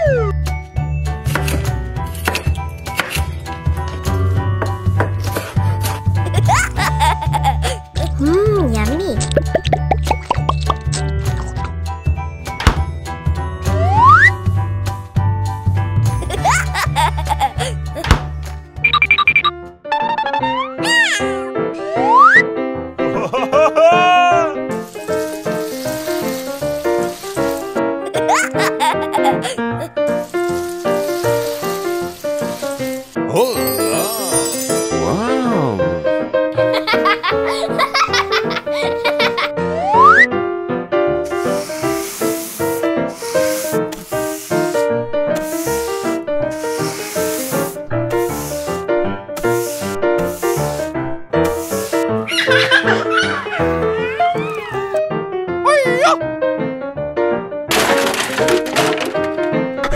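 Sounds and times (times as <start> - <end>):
background music melody: 0.0 - 57.8
water pouring from watering can: 24.7 - 27.7, 30.1 - 33.1.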